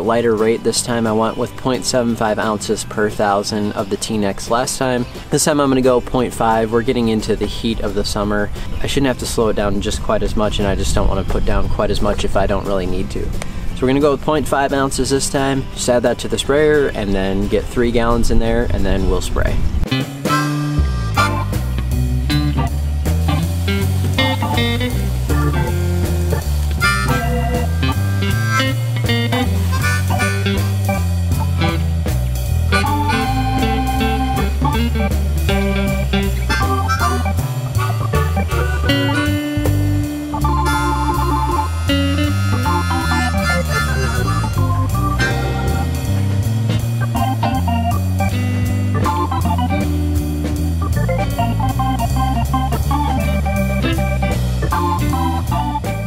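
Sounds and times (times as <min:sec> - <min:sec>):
upbeat blues tune with organ: 0:19.9 - 0:56.0.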